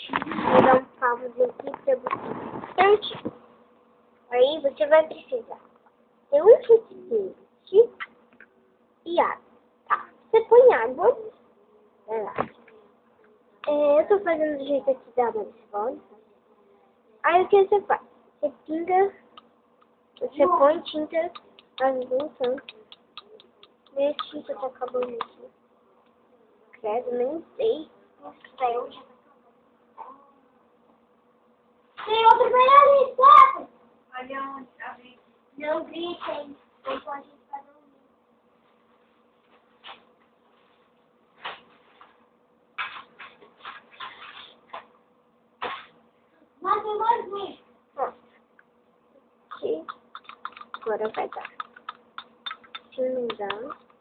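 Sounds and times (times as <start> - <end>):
person speaking: 17.2 - 25.6, 49.5 - 54.0
light irregular clicks: 21.2 - 25.4, 49.5 - 54.0.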